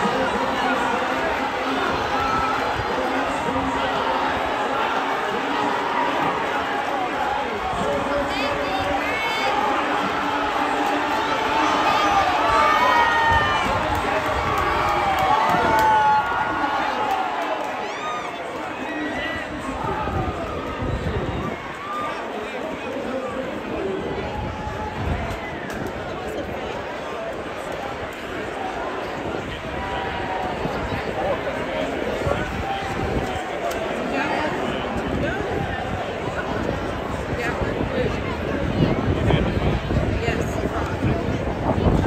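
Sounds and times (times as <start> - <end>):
crowd shouting and cheering: 0.0 - 42.0.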